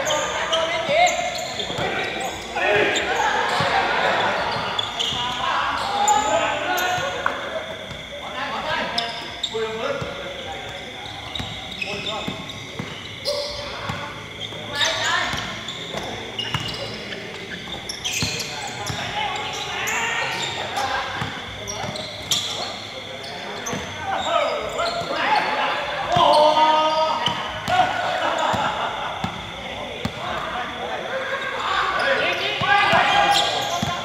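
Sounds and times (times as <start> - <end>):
players calling out: 0.0 - 34.0.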